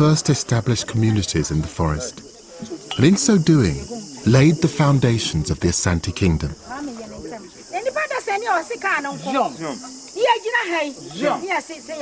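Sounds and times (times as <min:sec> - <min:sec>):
insects hissing: 0:00.0 - 0:12.0
people talking and calling out: 0:00.0 - 0:12.0.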